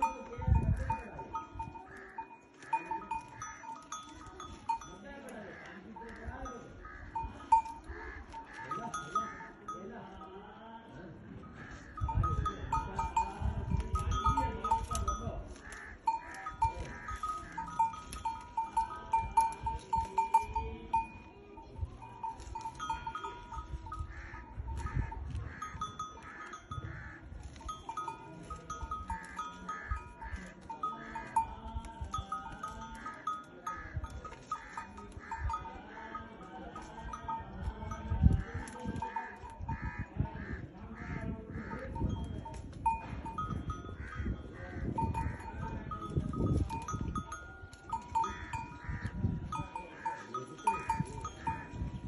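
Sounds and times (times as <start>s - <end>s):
livestock bells clinking: 0.0s - 10.6s, 11.2s - 52.0s.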